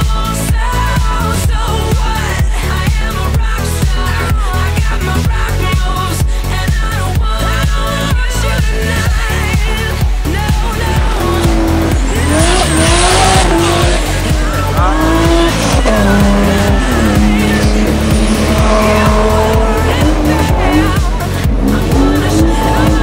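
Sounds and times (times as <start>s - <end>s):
dance music with steady beat: 0.0s - 23.0s
car engine revving: 8.8s - 23.0s.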